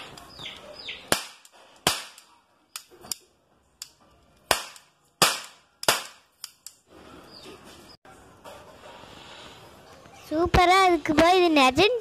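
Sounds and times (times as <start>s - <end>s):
cap gun cracks: 1.1s - 6.8s.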